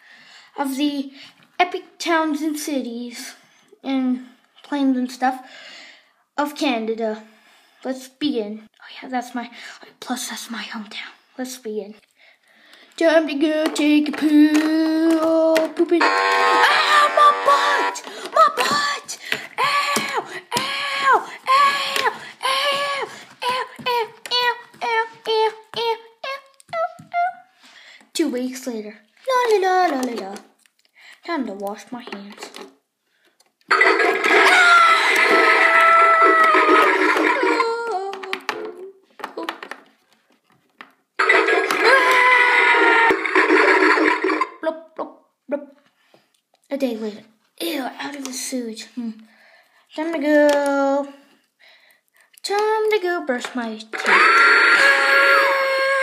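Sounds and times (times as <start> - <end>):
toy electronic water sound effect: 33.7 - 37.6, 41.2 - 44.6, 53.9 - 55.2.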